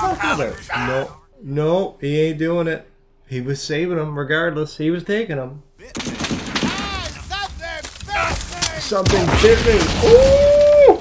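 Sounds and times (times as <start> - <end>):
men shouting: 0.0 - 1.2, 5.8 - 11.0
gunfire: 5.8 - 10.6.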